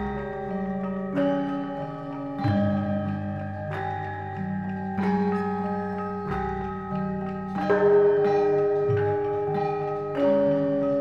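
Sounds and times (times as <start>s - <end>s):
gamelan playing: 0.0s - 11.0s.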